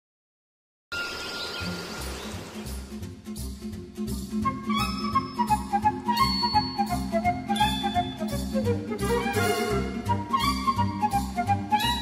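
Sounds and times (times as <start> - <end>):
soft music with pulsing bass: 2.2 - 12.0.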